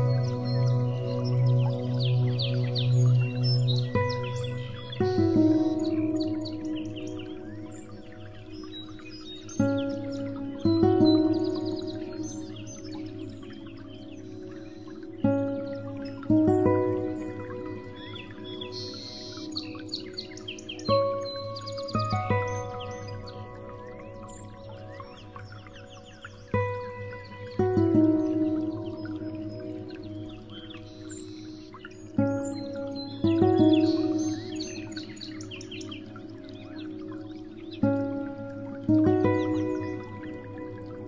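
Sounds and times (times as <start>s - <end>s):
birdsong chirps: 0.0s - 41.0s
calm music of held tones: 0.0s - 41.0s.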